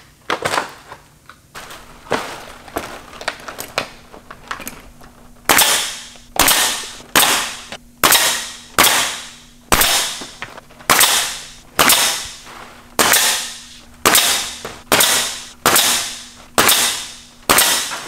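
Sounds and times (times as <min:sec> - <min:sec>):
nail gun firing: 0:05.5 - 0:18.0.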